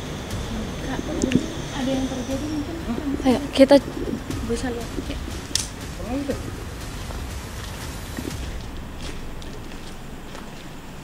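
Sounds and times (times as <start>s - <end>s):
steady low rumble: 0.0s - 11.0s
footsteps with scuffs: 3.0s - 11.0s.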